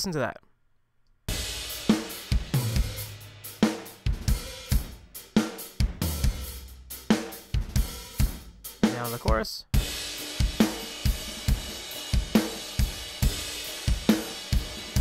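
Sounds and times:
rock drum kit beat: 1.3 - 15.0.

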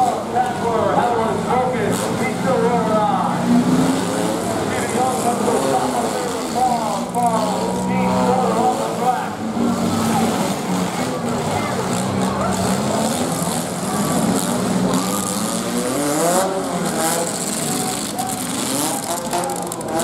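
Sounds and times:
car engines revving: 0.0 - 20.0
crowd voices: 0.0 - 20.0.

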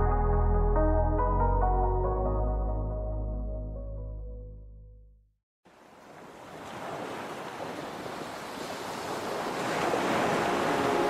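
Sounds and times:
ocean surf rushing: 6.1 - 11.0.

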